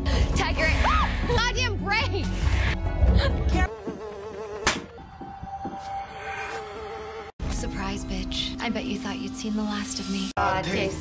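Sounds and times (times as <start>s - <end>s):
fly buzzing: 3.6s - 5.0s, 5.8s - 7.4s.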